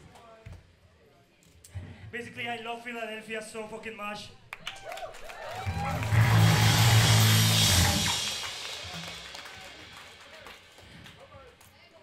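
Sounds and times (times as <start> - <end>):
band playing loud low chord: 5.7 - 11.2
cymbal wash: 6.0 - 11.2.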